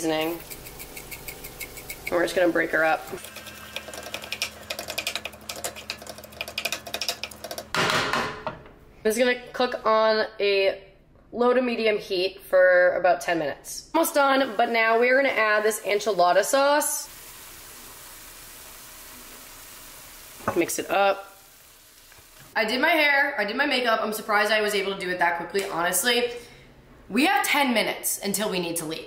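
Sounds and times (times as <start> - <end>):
spatula scraping in frying pan: 0.0 - 5.9
food sizzling in a pan: 0.0 - 6.1, 14.0 - 22.6.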